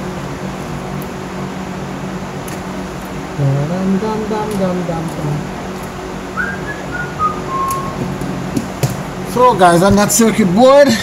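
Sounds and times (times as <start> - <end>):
low background hum: 0.0 - 11.0
man whistling: 6.4 - 8.0.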